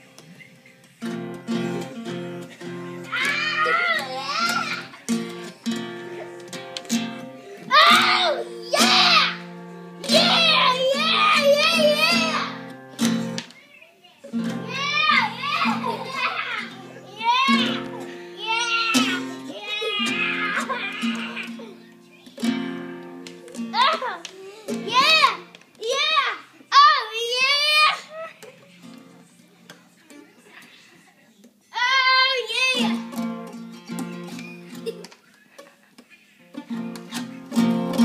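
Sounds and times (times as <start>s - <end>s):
young child singing: 3.0s - 5.0s, 7.6s - 12.7s, 14.5s - 21.5s.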